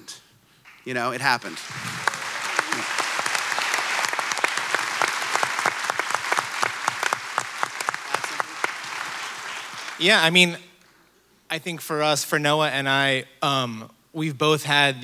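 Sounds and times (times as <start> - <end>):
audience applauding: 1.4 - 10.4.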